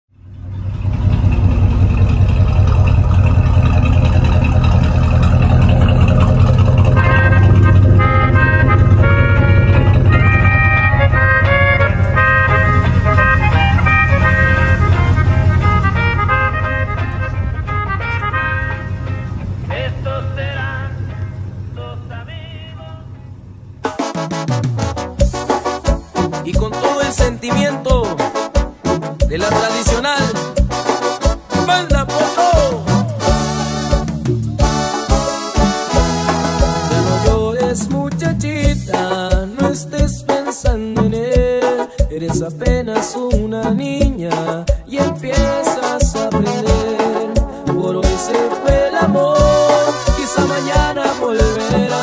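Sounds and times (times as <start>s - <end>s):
vehicle engine rumbling: 0.1s - 52.0s
music with sustained notes: 4.0s - 22.0s, 28.3s - 37.6s.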